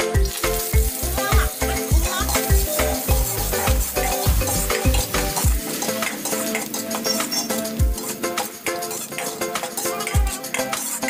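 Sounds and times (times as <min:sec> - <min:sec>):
music with steady beat: 0:00.0 - 0:11.0
oil sizzling in a wok: 0:00.0 - 0:11.0.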